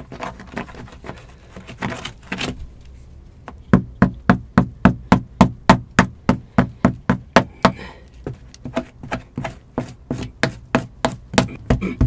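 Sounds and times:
tool chipping brick wall: 3.7 - 12.0.

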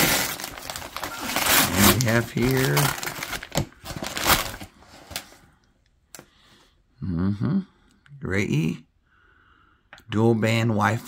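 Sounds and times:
paper mailer crinkling: 0.0 - 5.4.

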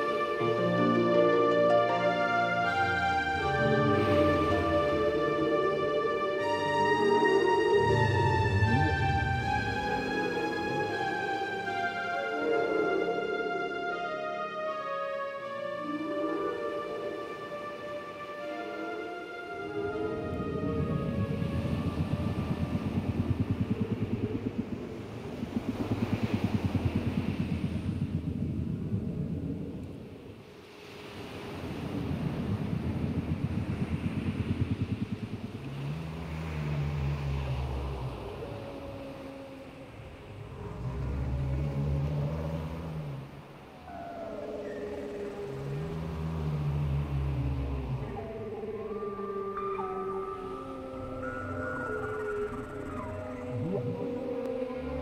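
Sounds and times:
whale moans: 0.0 - 30.5, 31.2 - 55.0
higher gliding whale calls: 0.0 - 55.0
low pulsing rumble: 2.7 - 11.2, 19.7 - 30.4, 31.8 - 43.7, 44.8 - 55.0.

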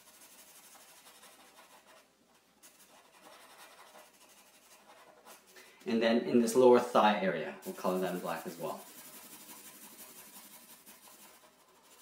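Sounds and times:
marker rubbing on paper: 0.0 - 5.5, 7.6 - 12.0.

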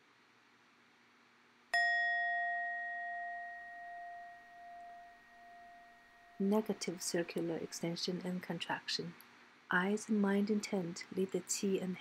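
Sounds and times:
bell ringing: 1.8 - 7.5.

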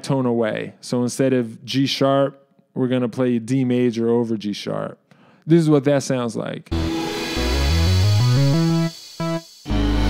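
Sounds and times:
short chord: 6.7 - 9.0
sampled chords over bass line: 6.7 - 10.0.

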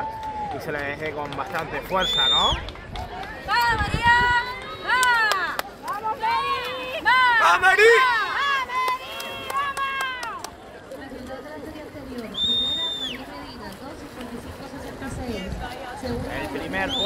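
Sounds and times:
background chatter: 0.0 - 17.0
spectators shouting encouragement: 3.4 - 10.4.

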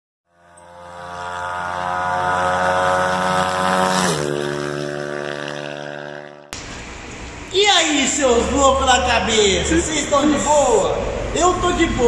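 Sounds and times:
engine passing by: 0.3 - 12.0.

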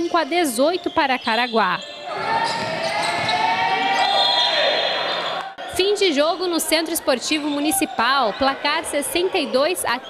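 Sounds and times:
echoing voices in hall: 1.8 - 10.0.

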